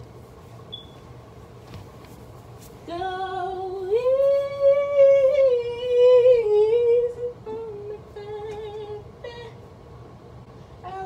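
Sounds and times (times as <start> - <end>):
woman singing wordless melody: 2.8 - 9.6, 10.8 - 11.0.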